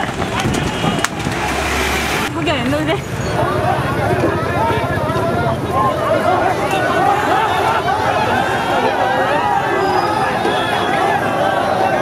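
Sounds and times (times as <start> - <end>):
rushing noise: 0.0 - 2.4.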